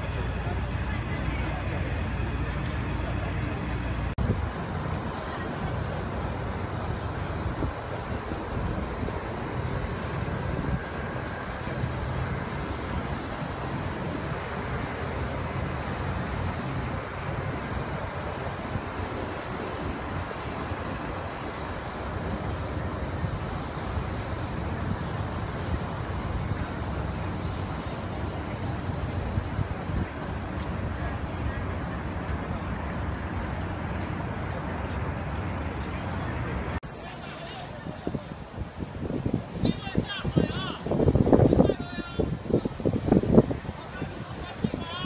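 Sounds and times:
distant engines rumbling: 0.0 - 45.0
outdoor background noise: 0.0 - 45.0.

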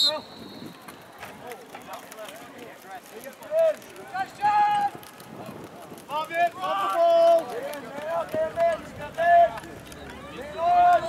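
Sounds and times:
people shouting and cheering: 3.5 - 5.1, 6.1 - 11.0.

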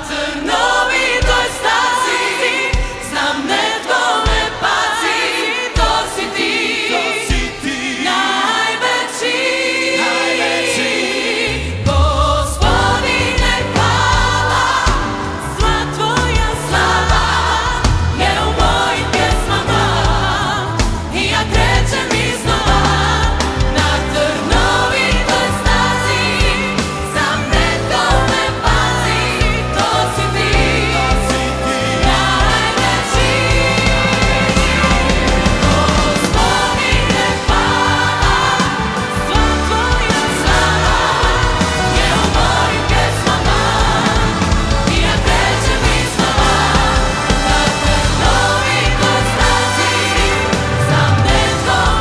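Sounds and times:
gospel choir singing: 0.0 - 52.0
live band accompaniment: 0.0 - 52.0.

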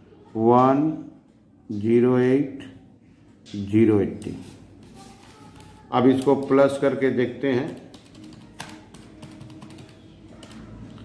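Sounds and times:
calculator keys clicking: 7.6 - 10.6.

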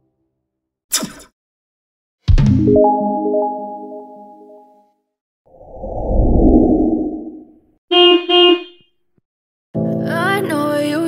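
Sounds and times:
low rumble: 5.6 - 7.6
vehicle horn honks: 7.9 - 8.9.

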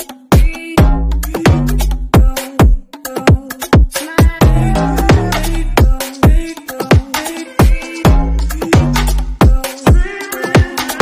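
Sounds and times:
heavy kick drum: 0.3 - 7.0, 7.6 - 10.0
rising synth sweep: 4.4 - 5.8
sustained bass notes: 4.4 - 5.9.

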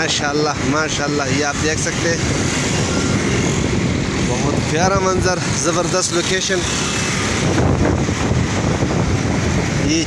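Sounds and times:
moving vehicle rumble: 0.0 - 10.0
wind noise on microphone: 0.0 - 10.0.

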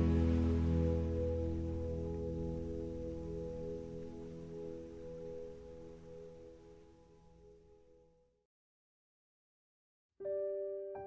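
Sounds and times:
soft ringing chord music: 0.0 - 8.3.

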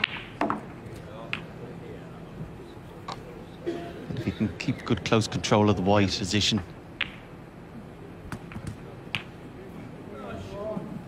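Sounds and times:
snooker balls clicking: 7.0 - 7.3.

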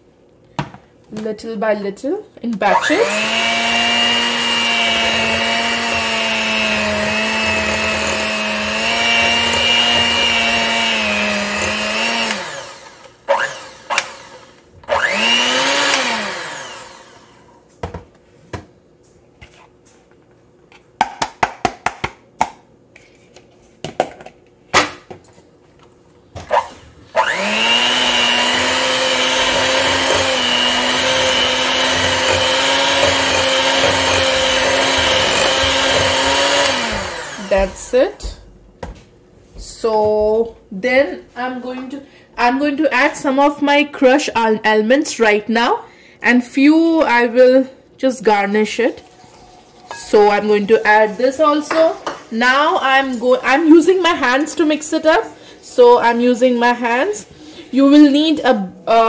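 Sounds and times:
electric hand mixer running: 2.7 - 17.5, 27.1 - 38.3.

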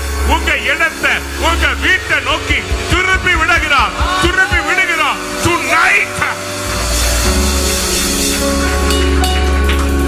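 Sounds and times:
deep steady bass note: 0.0 - 10.0
sustained music chords: 0.0 - 10.0.

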